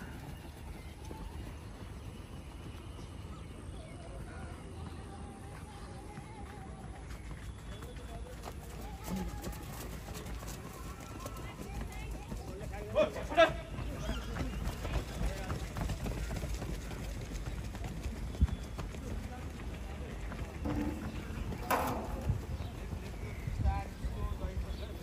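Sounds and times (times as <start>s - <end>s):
people running on grass: 0.0s - 25.0s.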